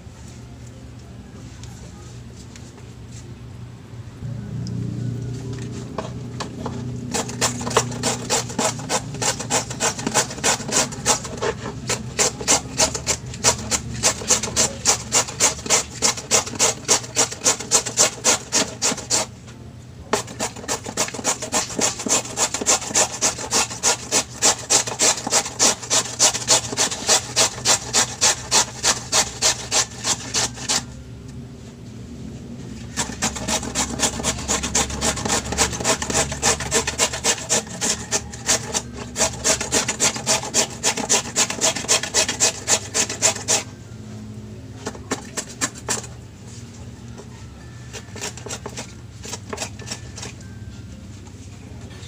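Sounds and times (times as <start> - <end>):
carrot being grated: 5.8 - 19.3, 20.1 - 30.9, 32.8 - 43.7, 44.8 - 46.2, 47.1 - 50.7.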